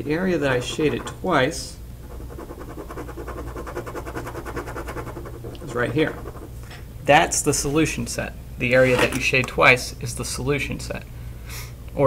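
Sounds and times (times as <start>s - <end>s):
pen scribbling on paper: 0.4s - 1.2s, 2.0s - 6.6s.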